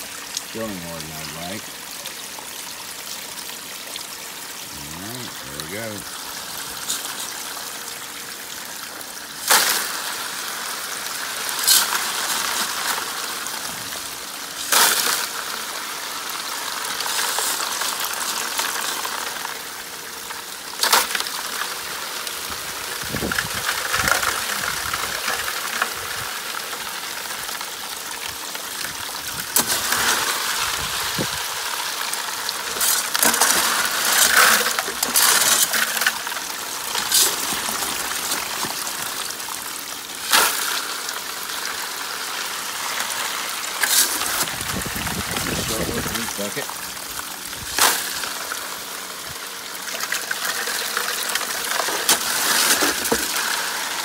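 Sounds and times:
water gushing over gravel: 0.0 - 54.0
stones clattering against plastic: 32.6 - 39.4, 43.8 - 46.6, 50.0 - 54.0.

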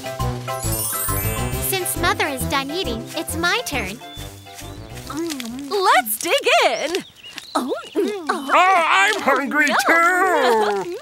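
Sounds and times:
music with held notes: 0.0 - 5.4.

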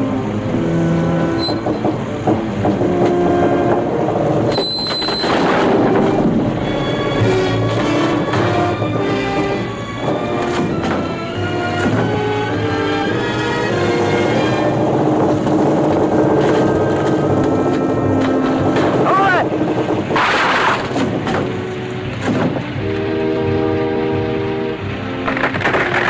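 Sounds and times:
film score music: 0.0 - 26.0.

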